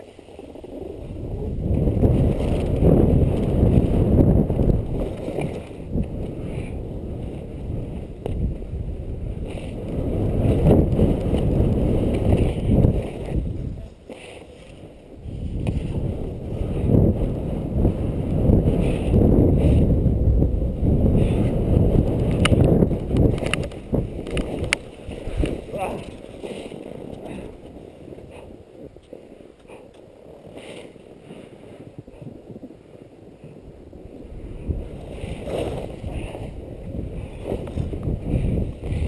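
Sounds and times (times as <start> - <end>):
skis scraping on snow: 0.0 - 20.1, 20.9 - 39.0
wind buffeting microphone: 0.0 - 39.0.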